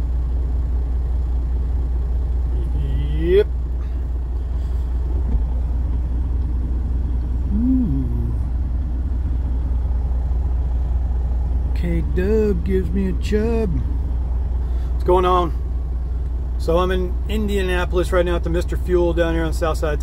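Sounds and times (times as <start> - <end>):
diesel engine idling: 0.0 - 20.0
rising pitched sound: 7.5 - 8.6.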